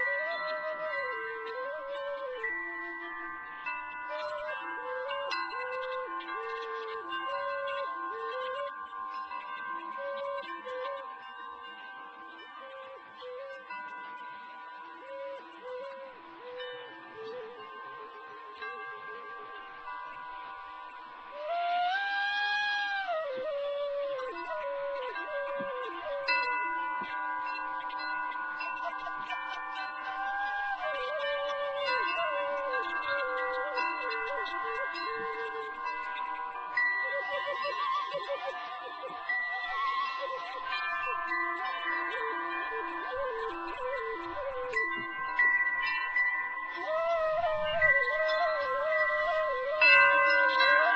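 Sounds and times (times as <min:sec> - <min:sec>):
flute playing slow melody: 0:00.0 - 0:50.9
wind chimes ringing: 0:00.0 - 0:50.9.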